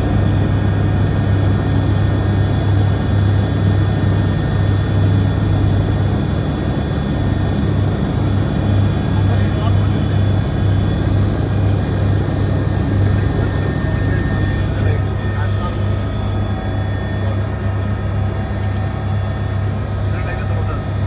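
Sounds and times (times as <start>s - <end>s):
aircraft engine hum: 0.0s - 21.0s
high whining tones: 11.0s - 21.0s.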